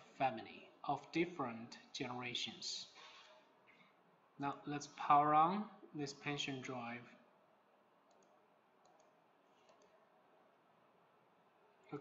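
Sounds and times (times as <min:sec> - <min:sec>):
computer mouse clicks: 0:08.0 - 0:10.0.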